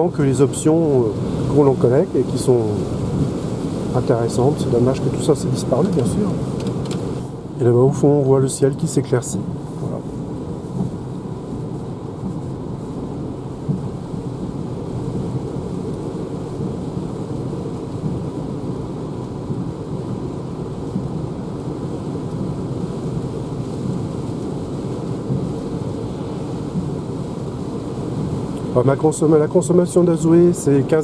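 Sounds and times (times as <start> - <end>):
tyre and road noise in car: 0.6 - 7.6, 9.4 - 31.0.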